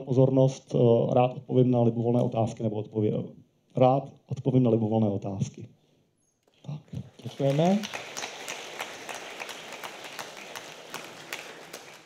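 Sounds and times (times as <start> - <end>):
audience applauding: 7.0 - 12.0.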